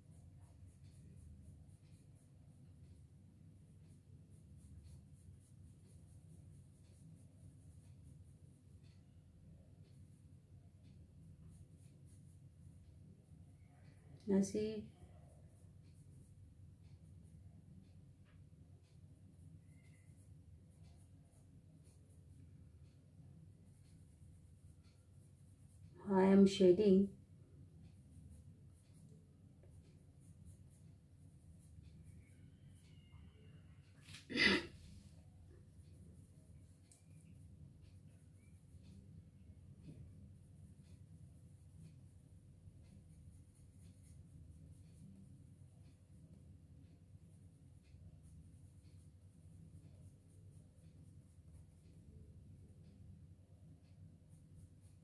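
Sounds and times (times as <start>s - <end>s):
low steady hum: 0.0s - 55.0s
pencil scratching on paper: 0.0s - 55.0s.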